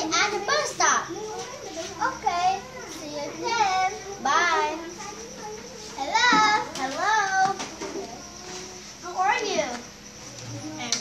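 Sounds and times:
children talking: 0.0s - 11.0s.

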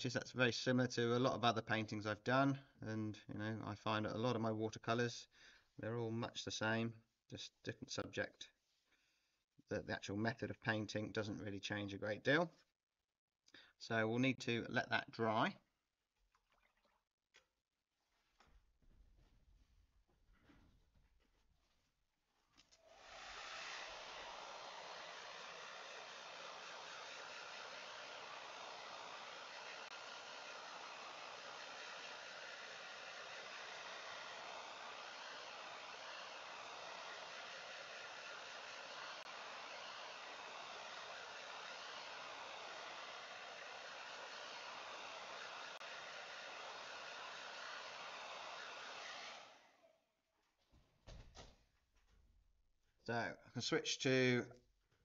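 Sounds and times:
hair dryer blowing: 22.6s - 50.1s.

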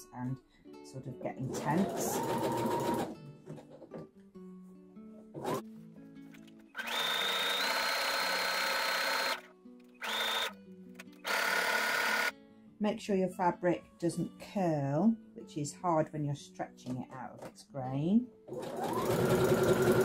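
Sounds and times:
sewing machine stitching: 1.5s - 3.1s, 5.4s - 5.6s, 6.8s - 9.4s, 11.2s - 12.3s, 18.5s - 20.0s.

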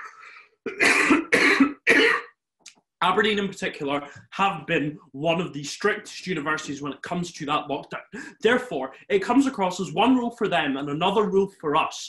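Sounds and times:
man coughing: 0.7s - 2.3s.

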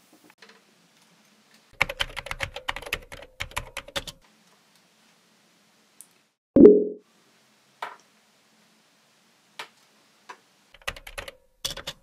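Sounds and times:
typing on computer keyboard: 1.8s - 4.2s, 10.8s - 12.0s
chat notification blip: 6.6s - 7.0s.

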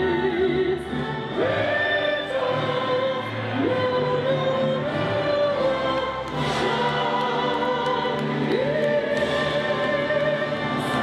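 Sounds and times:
choral and orchestral backing: 0.0s - 11.0s.

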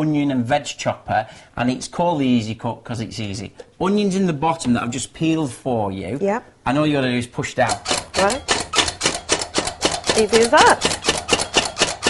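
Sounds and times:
vegetable chopper clacking: 7.5s - 12.0s.

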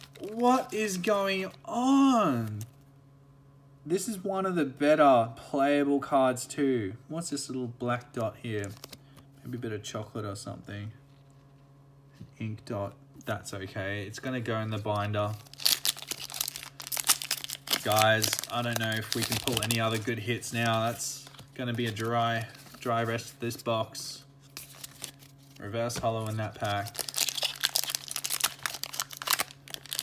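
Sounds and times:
foil wrapper crinkling and tearing: 0.0s - 0.7s, 15.0s - 23.2s, 24.5s - 30.0s.

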